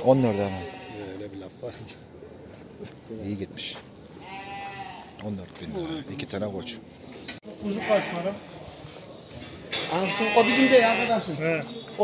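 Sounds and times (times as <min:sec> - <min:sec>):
sheep bleating: 0:00.0 - 0:01.2, 0:04.2 - 0:05.1, 0:07.6 - 0:08.5, 0:09.9 - 0:11.4.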